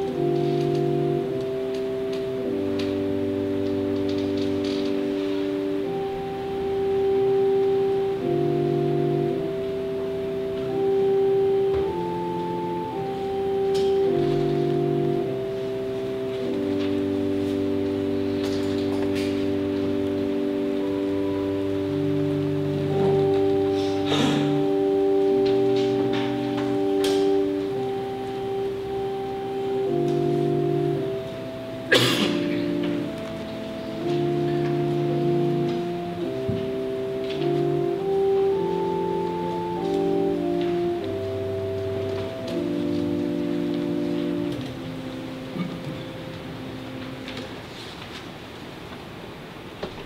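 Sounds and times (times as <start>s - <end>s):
organ playing sustained chords: 0.0s - 50.0s.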